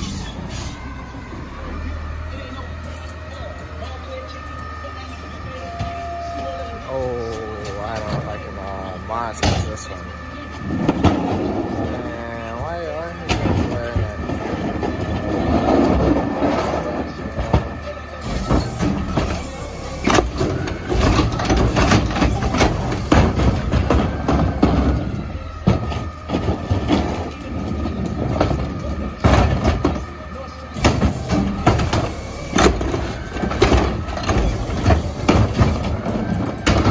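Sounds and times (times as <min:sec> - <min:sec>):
cart clanking and banging: 0:00.0 - 0:36.9
garbage truck humming: 0:00.0 - 0:36.9.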